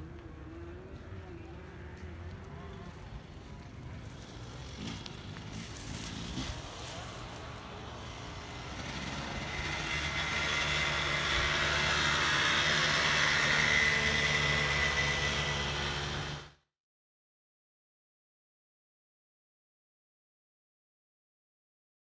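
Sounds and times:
dirt bike engine running: 0:02.4 - 0:16.6.

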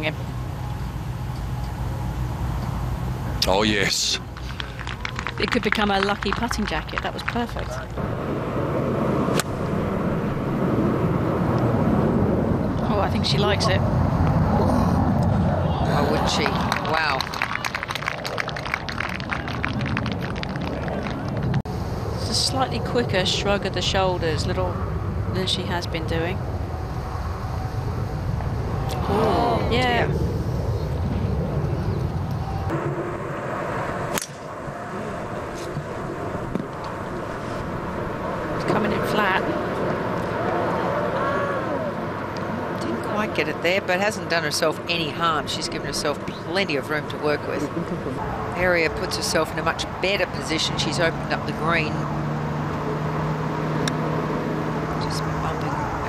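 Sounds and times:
steady low hum: 0:00.0 - 0:56.0
wind rumble on microphone: 0:04.2 - 0:56.0
golf club striking ball: 0:34.1 - 0:34.4.

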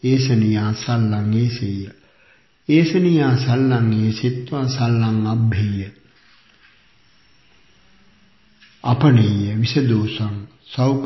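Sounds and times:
man speaking: 0:00.0 - 0:02.0, 0:02.7 - 0:06.0, 0:08.8 - 0:11.0
faint steady hiss: 0:00.0 - 0:11.0.

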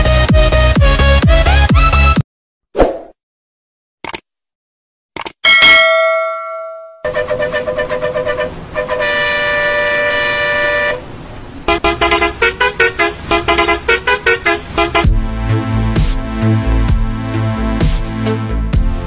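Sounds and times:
clicks: 0:05.2 - 0:05.4
bell chime: 0:05.5 - 0:07.1
bus horn tooting: 0:07.0 - 0:15.5.

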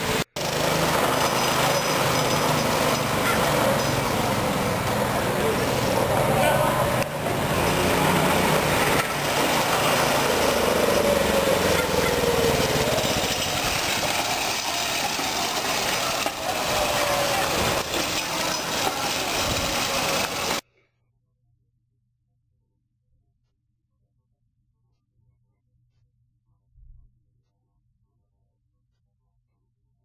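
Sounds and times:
go-kart engine running: 0:00.0 - 0:20.6.

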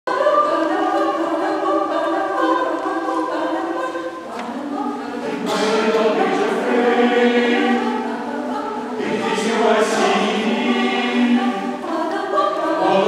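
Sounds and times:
choir singing held chords: 0:00.1 - 0:13.0.

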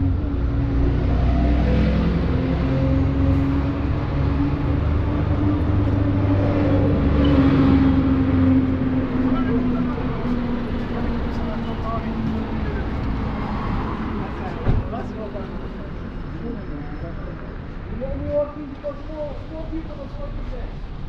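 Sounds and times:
vehicle engine humming: 0:00.0 - 0:17.0
passers-by voices: 0:00.0 - 0:21.0
street noise: 0:00.0 - 0:21.0.

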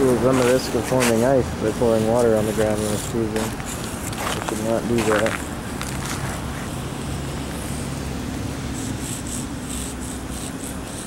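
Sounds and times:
chalk scratching on asphalt: 0:00.0 - 0:07.9, 0:08.7 - 0:11.0.

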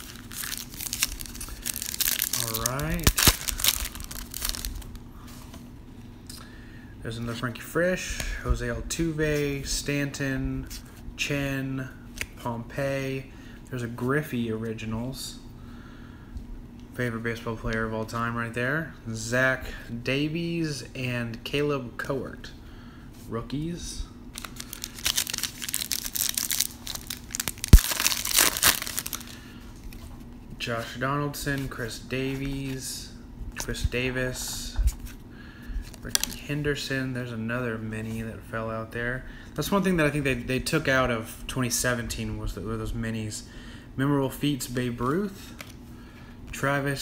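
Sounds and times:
foil wrapper tearing and crinkling: 0:00.0 - 0:05.0, 0:24.4 - 0:29.4, 0:35.9 - 0:36.4.

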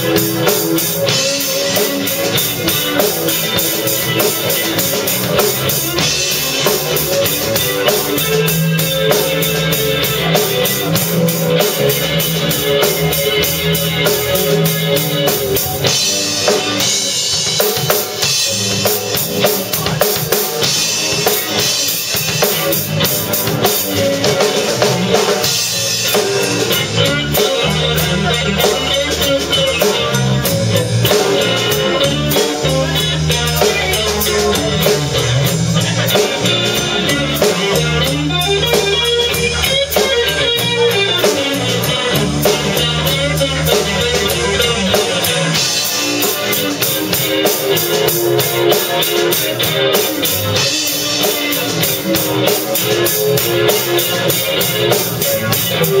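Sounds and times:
drum kit beat: 0:00.0 - 0:56.0
rock band playing: 0:00.0 - 0:56.0.

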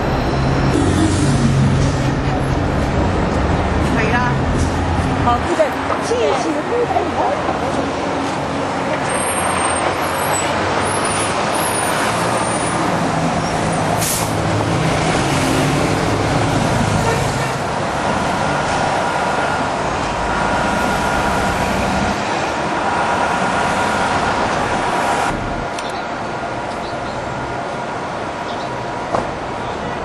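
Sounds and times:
heavy vehicle running: 0:00.0 - 0:30.0
passing car engines: 0:00.0 - 0:30.0.

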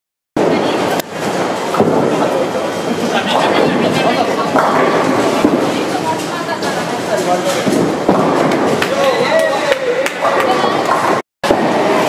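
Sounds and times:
people talking: 0:00.4 - 0:01.1, 0:01.9 - 0:07.9, 0:08.8 - 0:11.2
bowling balls rolling: 0:00.4 - 0:12.0.

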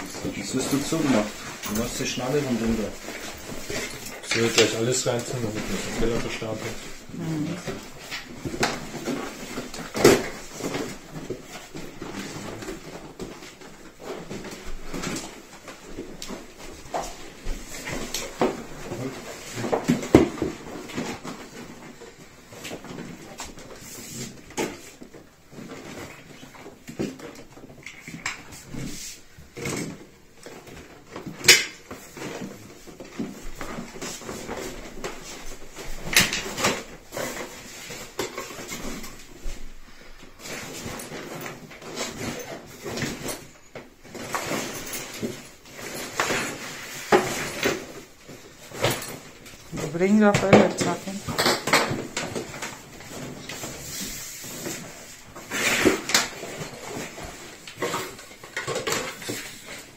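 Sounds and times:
plastic and nylon rustling: 0:00.0 - 0:59.9.

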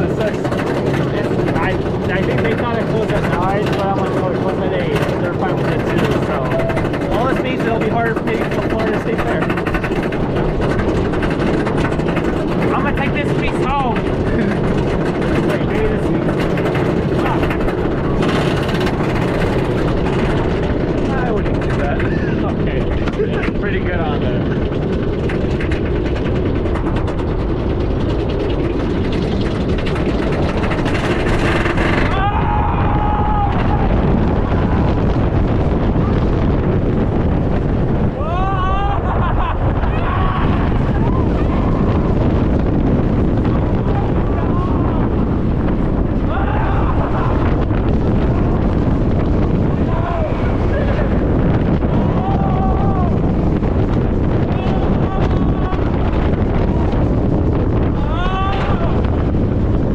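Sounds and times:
roller coaster lift clatter: 0:00.0 - 0:59.9
rush of wind: 0:00.0 - 0:59.9
riders yelling: 0:31.5 - 0:35.0, 0:38.1 - 0:42.0, 0:46.2 - 0:47.6, 0:49.7 - 0:51.3, 0:51.9 - 0:53.2, 0:54.4 - 0:56.3, 0:57.9 - 0:59.2.

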